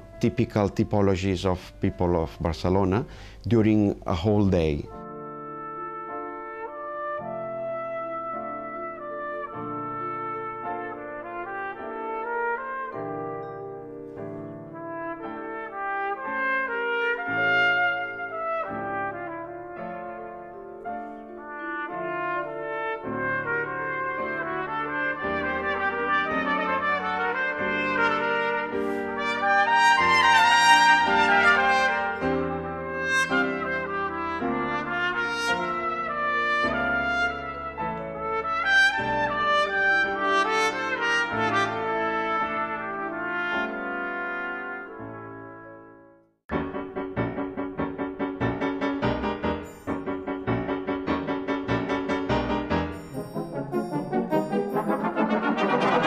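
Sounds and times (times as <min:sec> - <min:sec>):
brass ensemble playing chords: 0:04.9 - 0:13.6, 0:14.7 - 0:46.0, 0:52.3 - 0:56.0.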